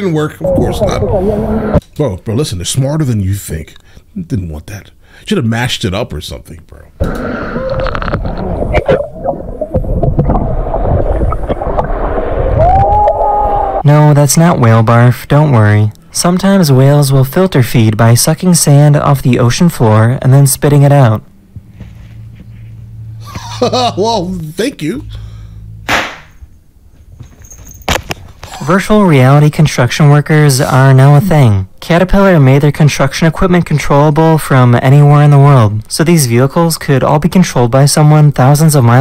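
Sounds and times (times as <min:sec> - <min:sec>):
water splashing and rushing: 0:08.3 - 0:13.8
confetti cannon pop: 0:25.9 - 0:26.4.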